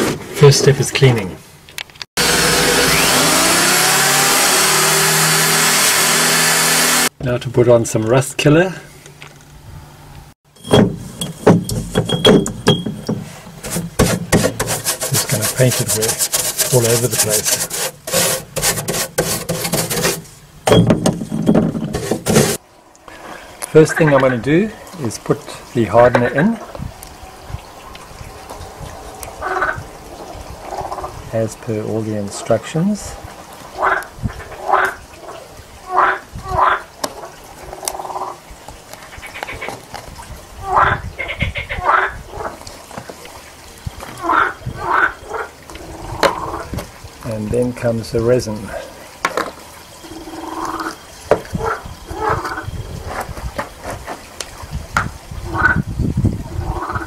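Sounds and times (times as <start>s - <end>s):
stiff brush scrubbing metal: 2.2s - 7.1s, 10.6s - 22.6s
animal calling: 50.0s - 52.8s.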